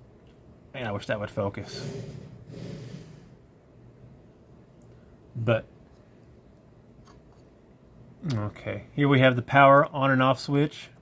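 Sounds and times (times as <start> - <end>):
man exhaling: 1.7 - 3.4.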